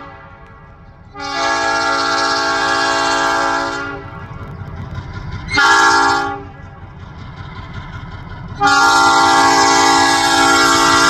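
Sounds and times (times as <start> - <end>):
locomotive air horn blasts: 0.0 - 4.2, 5.5 - 6.6, 8.6 - 11.0
diesel engine rumble: 0.0 - 11.0.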